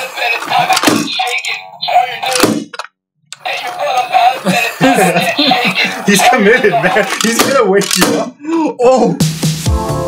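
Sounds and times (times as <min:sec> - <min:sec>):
thunk: 0:02.4 - 0:02.8.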